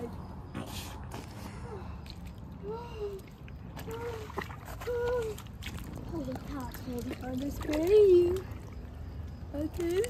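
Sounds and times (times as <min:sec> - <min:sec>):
bare feet on wet plastic tarp: 0:00.6 - 0:10.0.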